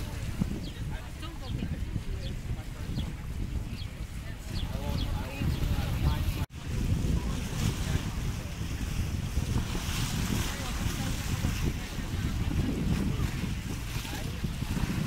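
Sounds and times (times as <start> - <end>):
lake waves splashing on stone: 0.0 - 15.0
wind buffeting microphone: 0.0 - 15.0.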